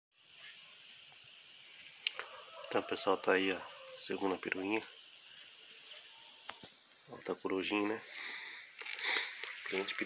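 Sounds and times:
steady hiss: 0.2 - 10.0.

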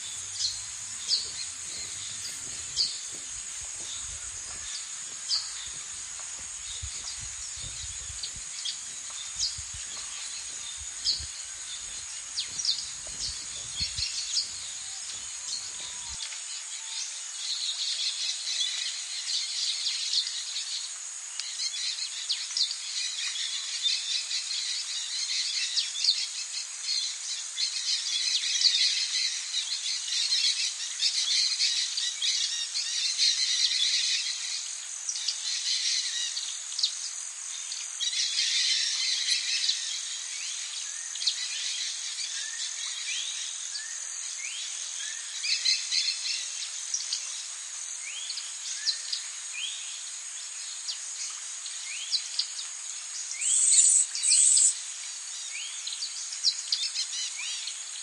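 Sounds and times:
birds chirping: 0.0 - 16.2
high-pitched insect drone: 0.0 - 19.2.

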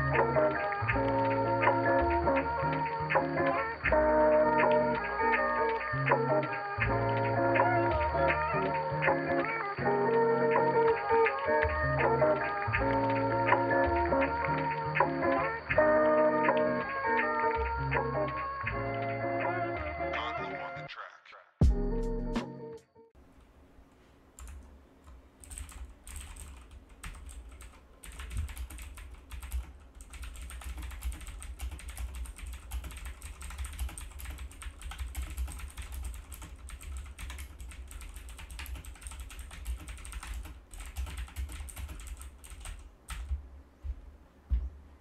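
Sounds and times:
fast typing on computer keyboard: 24.4 - 24.6, 25.4 - 43.4.

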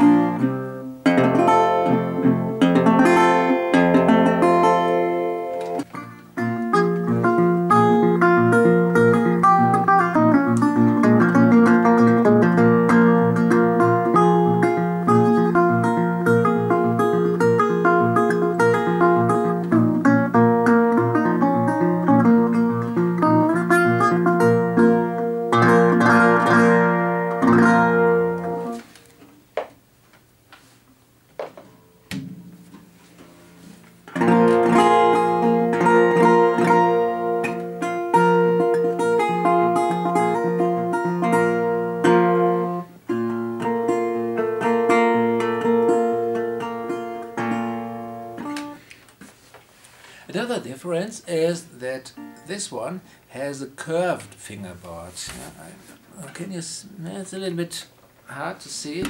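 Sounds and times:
fingerpicked resonator guitar: 0.0 - 29.2, 32.1 - 48.8, 50.3 - 56.6
guitar knocks: 31.3 - 33.4.

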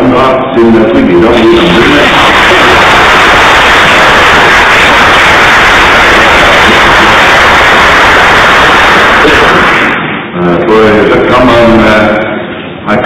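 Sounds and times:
audience applause: 1.3 - 10.0.

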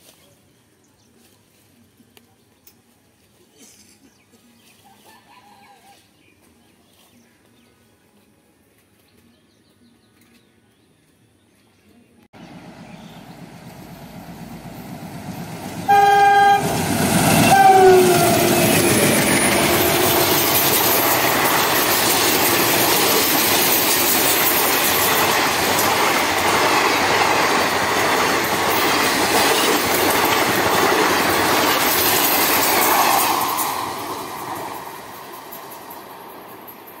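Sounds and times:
locomotive horn: 15.7 - 20.6
train wheel clatter: 16.8 - 37.0.

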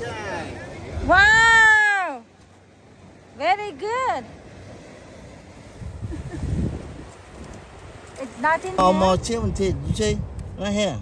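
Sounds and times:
surf washing: 0.0 - 11.0
wind buffeting microphone: 4.2 - 11.0.

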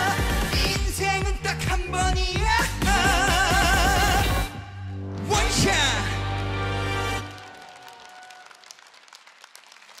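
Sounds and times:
audience applauding: 6.8 - 10.0.

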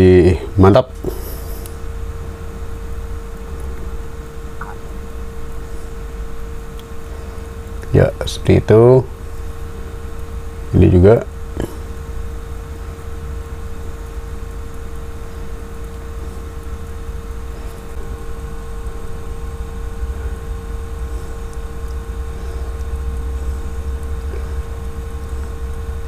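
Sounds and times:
low mechanical rumble with whine: 0.0 - 26.0.

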